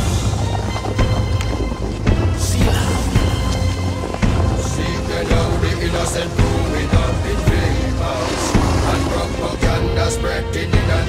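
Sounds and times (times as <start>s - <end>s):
deep steady bass: 0.0s - 11.0s
thunder-like rumble and hiss: 0.0s - 11.0s.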